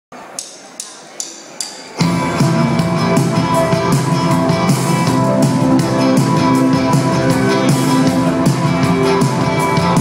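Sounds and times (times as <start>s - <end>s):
low crowd murmur: 0.1s - 10.0s
drumstick count-in clicks: 0.3s - 2.0s
band playing: 1.9s - 10.0s.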